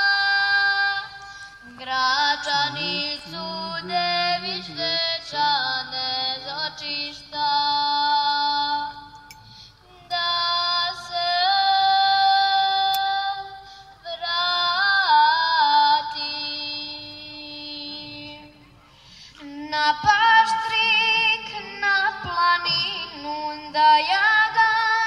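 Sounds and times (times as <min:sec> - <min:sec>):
woman singing into a microphone: 0:00.0 - 0:18.6, 0:19.4 - 0:25.0.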